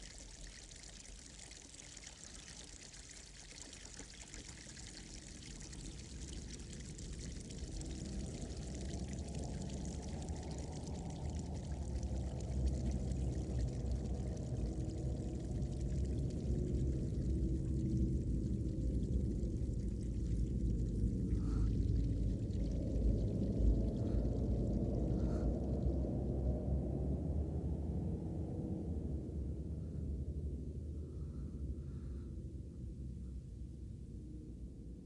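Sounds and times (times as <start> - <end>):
water trickling over rocks: 0.0 - 26.0
low rumble: 5.8 - 35.0.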